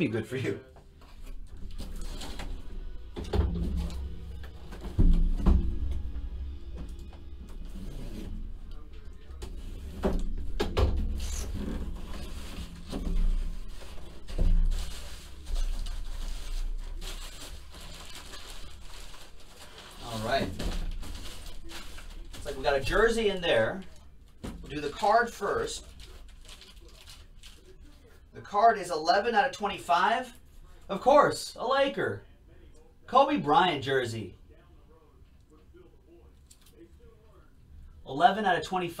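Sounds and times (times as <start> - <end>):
faint background music: 0.0 - 39.0.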